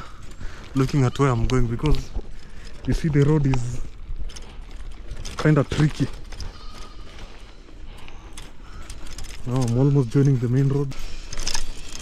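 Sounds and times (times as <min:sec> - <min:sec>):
bicycle rattling over stones: 0:00.0 - 0:12.0.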